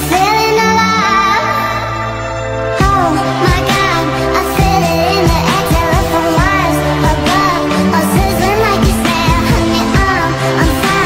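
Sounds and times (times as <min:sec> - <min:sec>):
high-pitched female vocal singing: 0:00.0 - 0:02.1, 0:02.8 - 0:11.0
synth and bass backing: 0:00.0 - 0:11.0.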